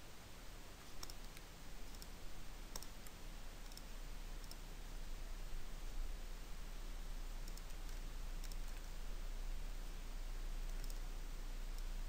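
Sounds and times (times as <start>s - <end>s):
computer mouse clicking: 0.8s - 4.6s, 7.4s - 9.0s, 10.6s - 11.1s.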